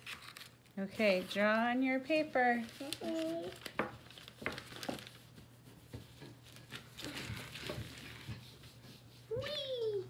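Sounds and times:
paper rubbing and rustling: 0:00.0 - 0:01.6, 0:02.4 - 0:09.4.

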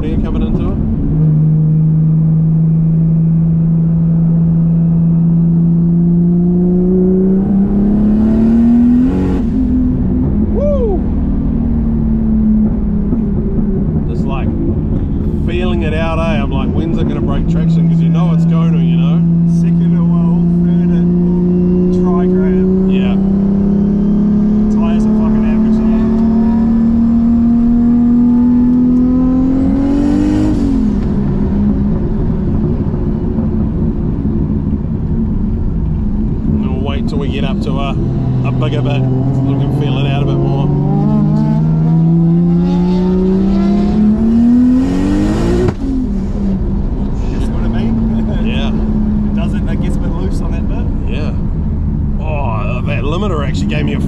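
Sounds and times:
car engine accelerating hard: 0:00.0 - 0:54.0.

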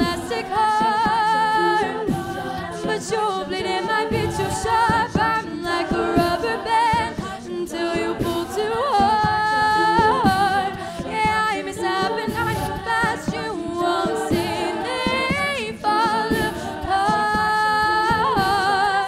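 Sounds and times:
backing vocal harmonies: 0:00.0 - 0:19.0
lead female voice singing: 0:00.0 - 0:19.0
vocal percussion beat: 0:00.0 - 0:19.0.

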